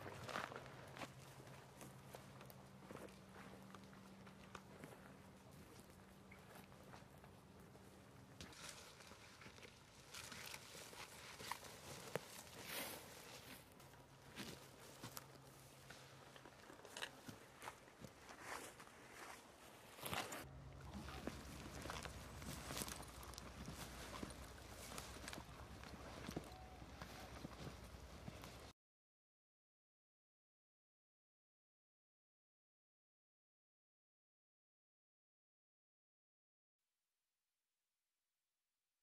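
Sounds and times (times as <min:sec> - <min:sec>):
footsteps on forest floor: 0:08.4 - 0:28.7
twigs snapping and rustling: 0:21.0 - 0:26.5.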